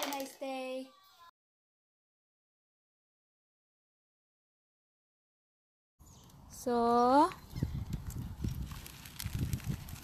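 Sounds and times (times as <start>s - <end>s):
pushchair rolling on dirt: 7.7s - 10.0s.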